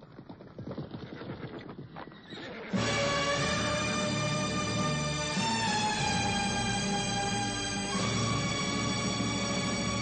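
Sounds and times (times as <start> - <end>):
horse hooves clattering: 0.0 - 3.9
loud music: 2.8 - 10.0.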